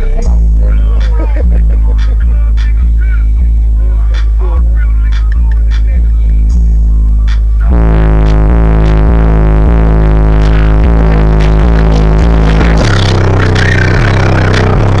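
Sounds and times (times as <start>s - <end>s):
bass-heavy music through subwoofers: 0.0s - 15.0s.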